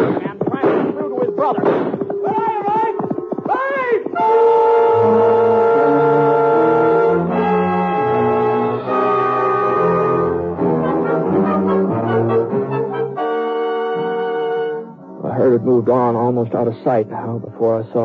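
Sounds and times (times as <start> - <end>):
dramatic orchestral music with brass: 4.2 - 15.0.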